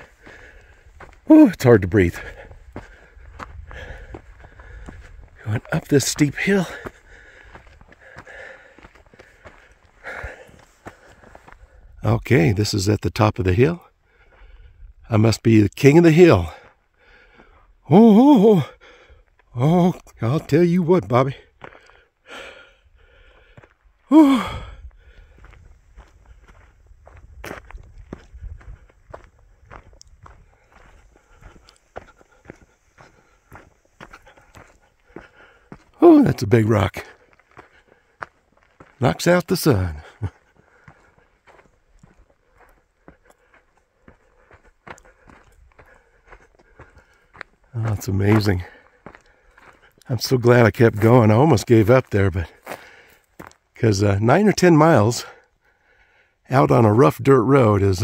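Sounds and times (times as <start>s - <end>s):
footsteps on gravel: 0.0s - 11.8s, 23.4s - 53.8s
man breathing heavily: 0.0s - 12.0s, 13.8s - 15.1s, 16.4s - 17.8s, 18.5s - 19.5s, 21.4s - 39.0s, 39.7s - 50.1s, 52.3s - 53.6s, 55.2s - 56.5s.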